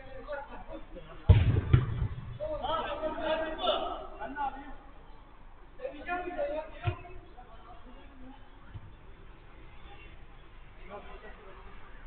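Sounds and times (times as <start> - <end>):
football being kicked: 1.3 - 2.4, 6.8 - 7.1.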